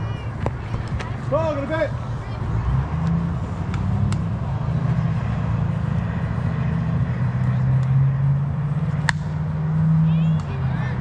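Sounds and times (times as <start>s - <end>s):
bat hitting softball: 9.0s - 9.3s.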